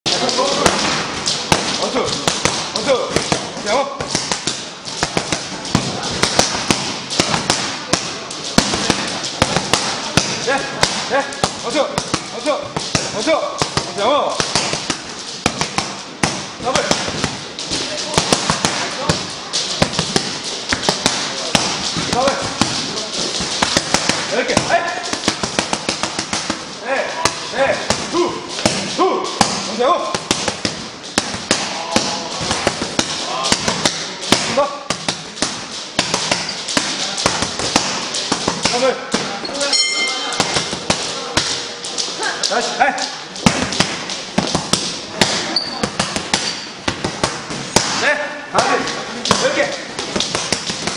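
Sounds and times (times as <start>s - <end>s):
boxing gloves slapping mitts: 0.1s - 39.4s, 40.2s - 41.7s, 42.5s - 50.9s.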